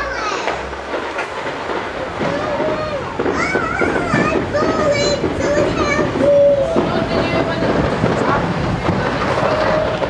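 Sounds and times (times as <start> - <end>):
tram rumbling along track: 0.0 - 10.0
wind buffeting microphone: 0.6 - 10.0.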